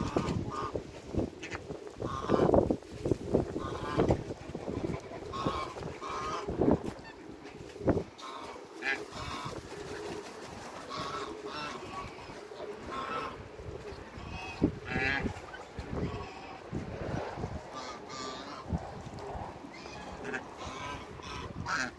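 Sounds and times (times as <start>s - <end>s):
geese honking: 1.4s - 2.6s, 3.6s - 7.3s, 8.2s - 16.8s, 17.5s - 18.8s, 19.6s - 21.9s.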